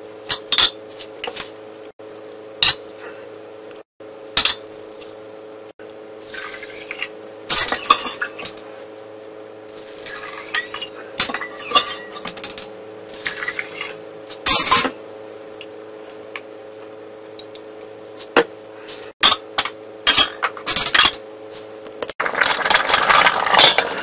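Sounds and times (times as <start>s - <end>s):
steady low hum: 0.0s - 24.0s.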